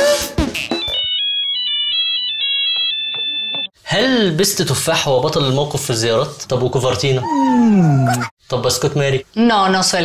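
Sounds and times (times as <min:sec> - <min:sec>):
drum-backed music: 0:00.0 - 0:01.1
electronic ringtone melody: 0:00.6 - 0:03.8.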